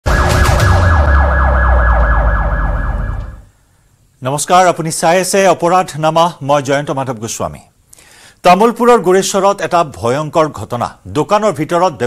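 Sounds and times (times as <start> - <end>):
emergency siren yelping: 0.0 - 3.5
low rumble: 0.1 - 3.5.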